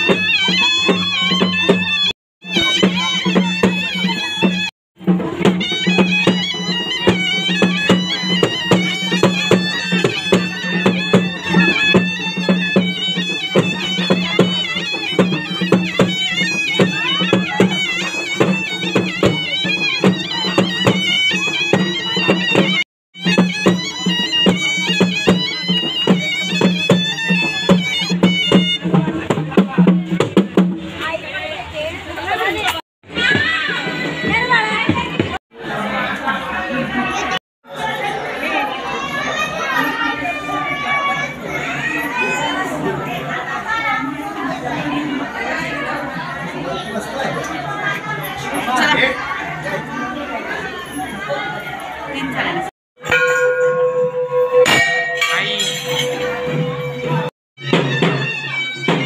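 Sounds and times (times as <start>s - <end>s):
shrill reed-pipe melody: 0.0s - 29.4s, 53.0s - 59.0s
fast drum strokes: 0.0s - 31.4s, 32.7s - 35.4s, 53.0s - 59.0s.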